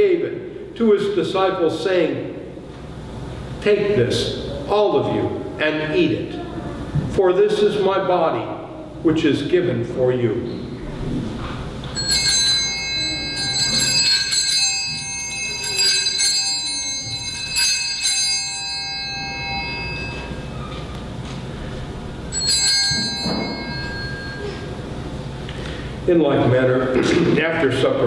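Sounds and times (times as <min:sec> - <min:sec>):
altar bells ringing: 0:11.8 - 0:25.4.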